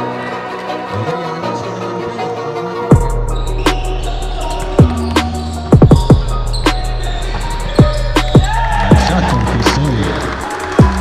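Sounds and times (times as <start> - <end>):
booming bass-drum beat: 2.9 - 10.2.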